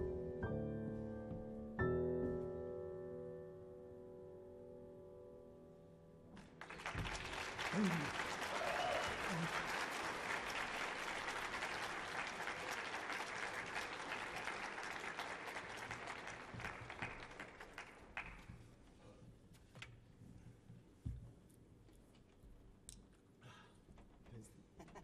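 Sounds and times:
audience applauding: 6.4s - 18.6s
crowd shouting: 7.7s - 9.5s.

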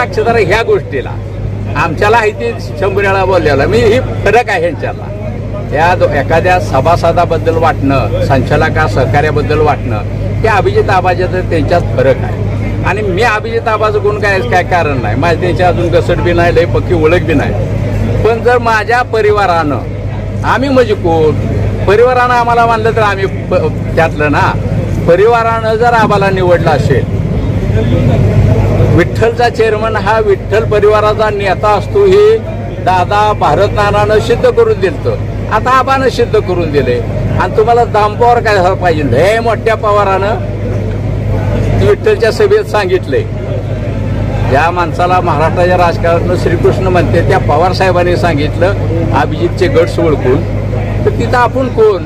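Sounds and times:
man speaking: 0.0s - 40.5s, 44.5s - 52.0s
steady low rumble: 0.0s - 42.6s
steady low hum: 0.0s - 52.0s.

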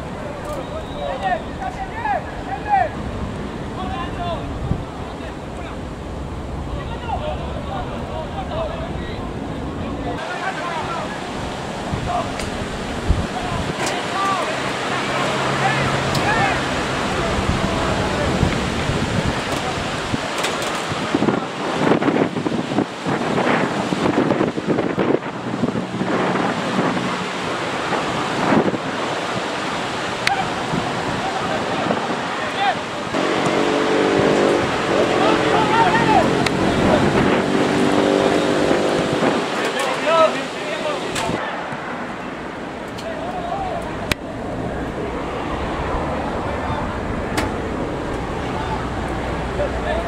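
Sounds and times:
wind on microphone: 0.0s - 10.2s, 10.8s - 40.3s, 40.9s - 50.0s
players and spectators shouting: 13.3s - 18.4s, 35.0s - 36.7s, 43.0s - 47.1s.

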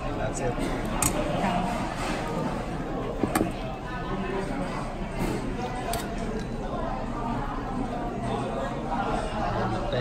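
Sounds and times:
restaurant chatter: 0.0s - 10.0s.

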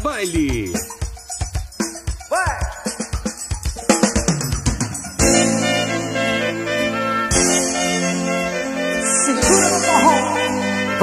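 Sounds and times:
drum fill snare and bass drum: 0.0s - 5.5s.

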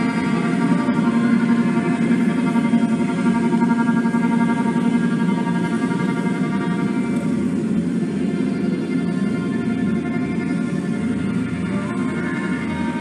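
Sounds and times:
band playing guitar drone: 0.0s - 13.0s.

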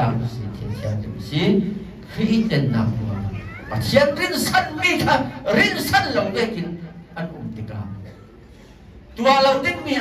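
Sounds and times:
man preaching: 0.0s - 8.3s, 9.1s - 10.0s.

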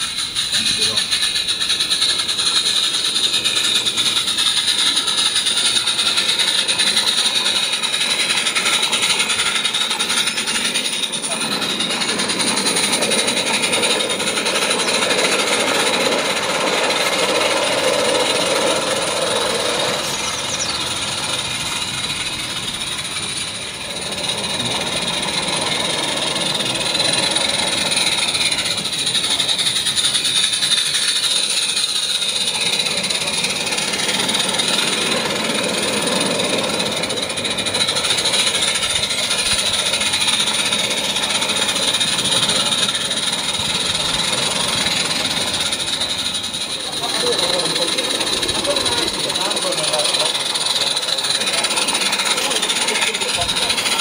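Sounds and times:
steam hissing: 0.0s - 54.0s
steam locomotive chattering beats: 0.0s - 54.0s.

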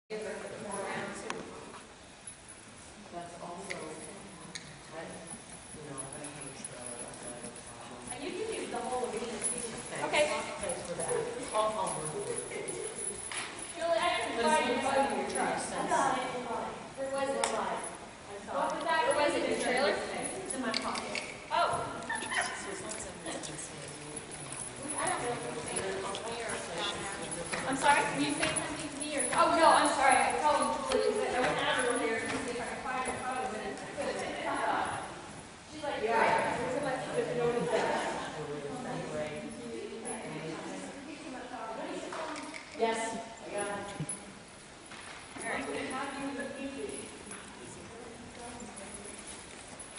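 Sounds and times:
people talking indistinctly: 3.0s - 44.4s.

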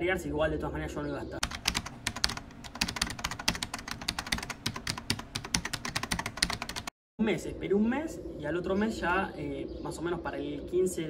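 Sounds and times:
computer keyboard typing: 1.4s - 6.9s.

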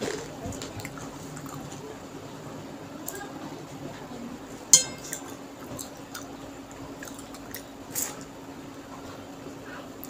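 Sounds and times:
steady low hum: 4.2s - 10.0s
chewing: 5.0s - 8.3s.

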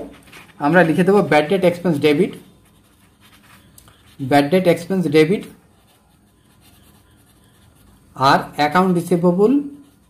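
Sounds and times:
marker pen scratching on paper: 0.0s - 10.0s.

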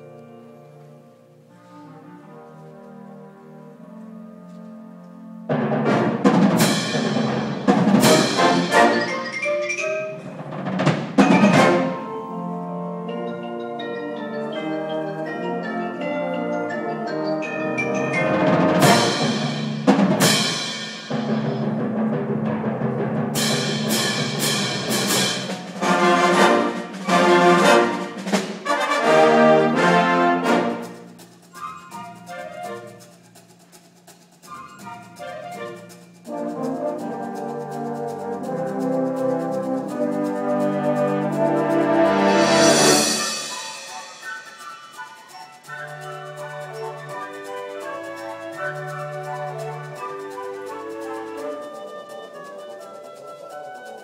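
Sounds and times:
wind band chords: 0.0s - 54.0s
loud percussion strikes: 5.5s - 12.0s, 17.8s - 31.2s, 38.4s - 45.0s.

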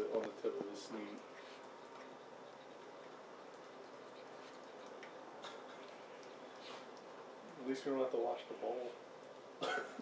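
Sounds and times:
dog licking food bowl: 0.1s - 7.6s.

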